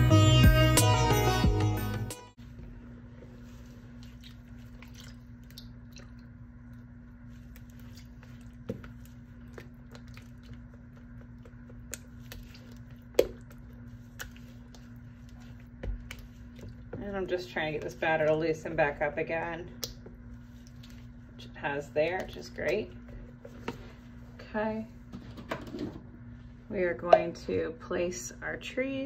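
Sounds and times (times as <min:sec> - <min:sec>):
steady low hum: 0:02.4 - 0:29.0
spatula stirring thick batter: 0:06.9 - 0:24.2.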